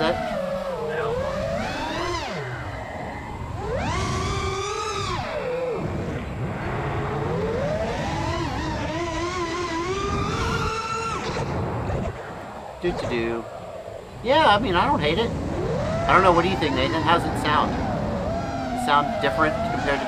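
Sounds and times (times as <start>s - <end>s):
drone motors whining: 0.0s - 20.0s.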